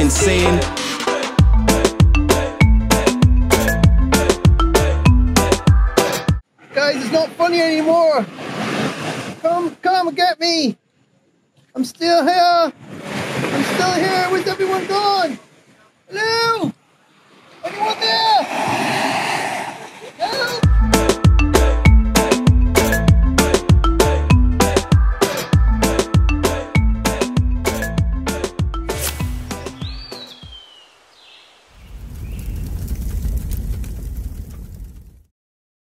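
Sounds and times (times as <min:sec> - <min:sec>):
man calling: 0:00.0 - 0:01.2, 0:16.1 - 0:16.8, 0:17.6 - 0:18.5, 0:20.2 - 0:20.9
surf breaking on beach: 0:06.7 - 0:09.8, 0:12.7 - 0:15.8, 0:17.1 - 0:20.6.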